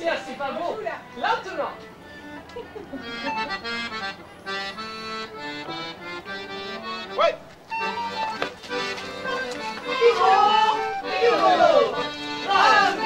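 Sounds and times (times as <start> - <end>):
accordion folk dance tune: 0.0 - 13.0
person calling out: 9.9 - 13.0.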